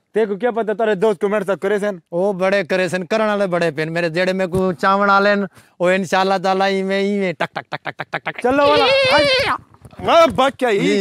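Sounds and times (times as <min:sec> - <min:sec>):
man laughing: 0:07.3 - 0:09.3, 0:10.7 - 0:11.0
man's quavering bleat-like vocal: 0:08.2 - 0:09.6.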